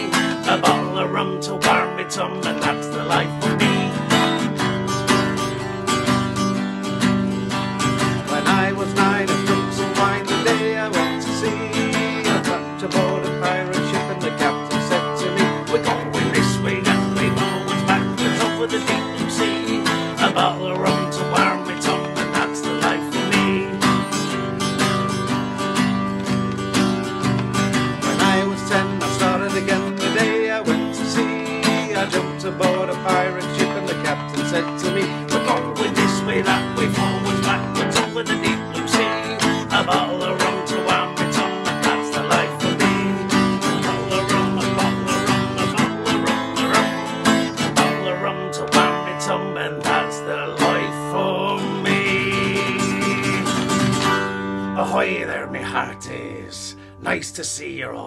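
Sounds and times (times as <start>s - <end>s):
acoustic guitar strumming: 0.0s - 57.5s.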